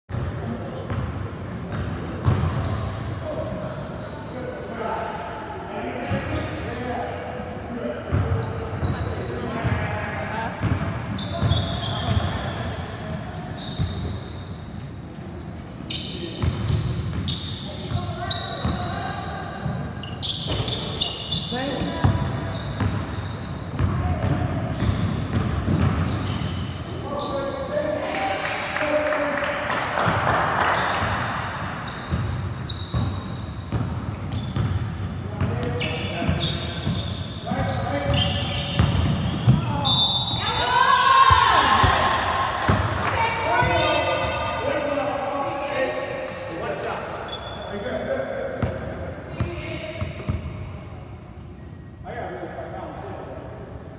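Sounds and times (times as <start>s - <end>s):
players calling out: 35.5s - 46.4s.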